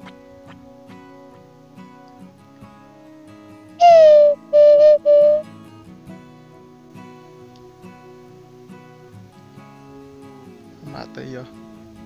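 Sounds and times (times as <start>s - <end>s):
acoustic guitar music: 0.0s - 12.0s
wooden bird call whistles: 3.8s - 5.4s.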